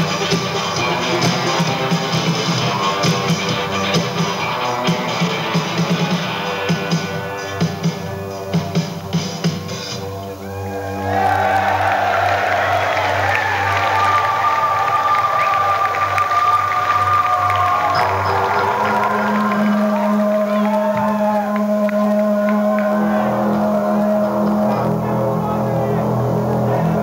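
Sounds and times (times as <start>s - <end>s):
crowd cheering: 0.0s - 8.8s, 10.0s - 27.0s
long synthesizer tones: 10.0s - 27.0s.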